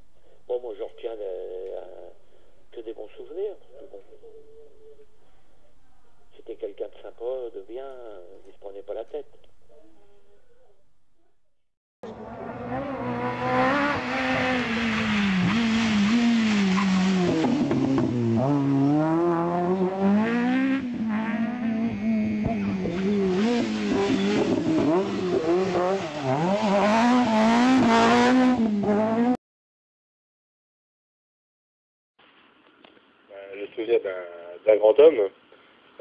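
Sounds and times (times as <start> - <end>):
rally car engine at full throttle: 12.0 - 29.4.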